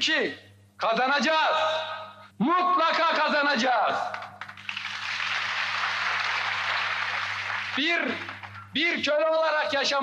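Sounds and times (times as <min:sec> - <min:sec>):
low recording hum: 0:00.0 - 0:10.0
audience applause: 0:04.1 - 0:08.6.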